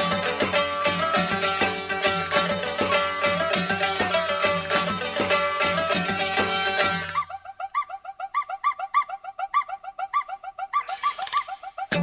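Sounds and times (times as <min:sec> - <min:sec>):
bird-like chirps: 0:07.2 - 0:12.0.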